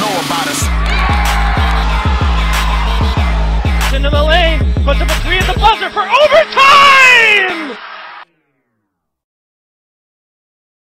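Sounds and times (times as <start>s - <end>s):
held vocal note of hip-hop song: 0.6s - 7.9s.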